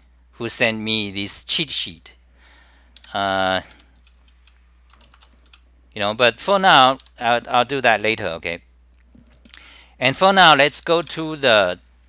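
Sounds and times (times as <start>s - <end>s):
keyboard keys clicking: 4.0s - 5.6s.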